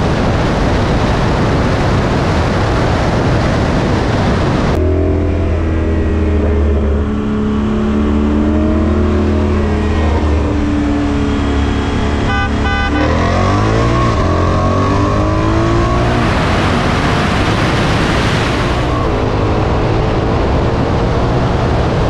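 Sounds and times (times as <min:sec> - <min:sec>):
car engine revving: 0:04.6 - 0:22.0.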